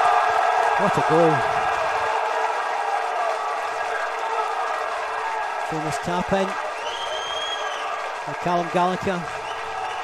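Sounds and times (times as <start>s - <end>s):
pitch-side crowd noise: 0.0s - 10.0s.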